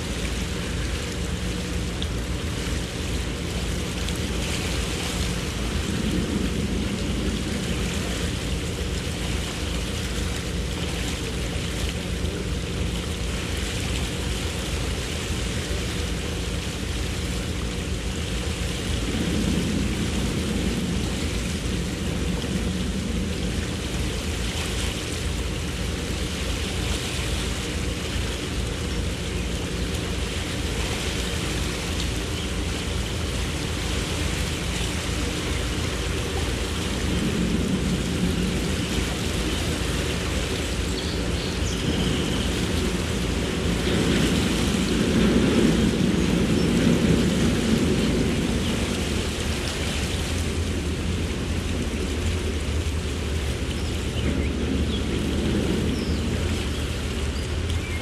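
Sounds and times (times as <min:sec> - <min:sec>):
boat engine running: 0:00.0 - 0:58.0
rushing noise: 0:17.2 - 0:26.2, 0:29.9 - 0:58.0.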